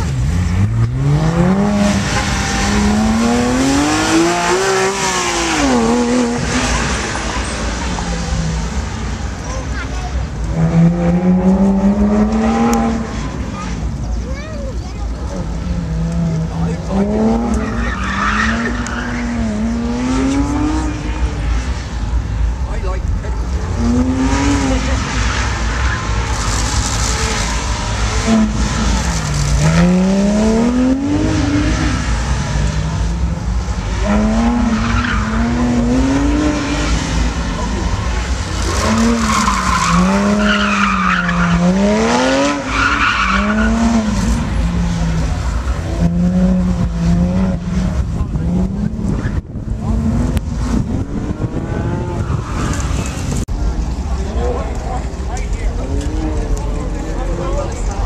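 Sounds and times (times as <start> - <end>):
car engine revving: 0.0 - 58.0
tire squeal: 17.3 - 21.3, 24.4 - 30.0, 33.9 - 46.2, 51.6 - 53.4.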